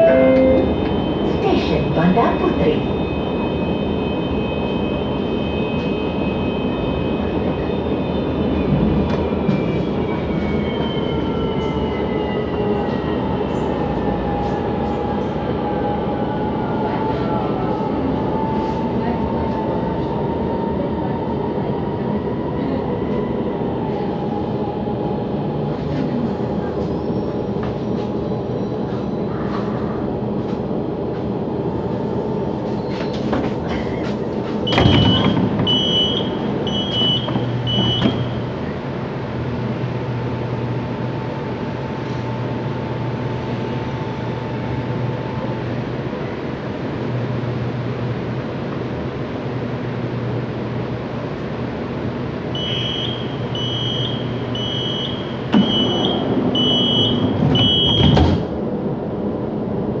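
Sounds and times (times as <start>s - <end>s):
high door chime beeps: 0.0s - 0.8s, 34.7s - 38.3s
tram equipment humming: 0.0s - 60.0s
doors shutting with a thud: 34.7s - 36.1s, 55.5s - 56.1s, 56.7s - 58.5s.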